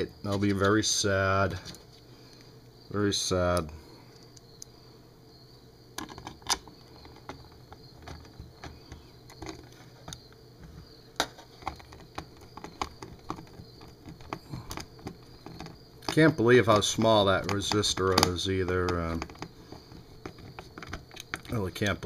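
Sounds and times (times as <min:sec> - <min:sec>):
plastic parts clicking: 0:06.0 - 0:22.0.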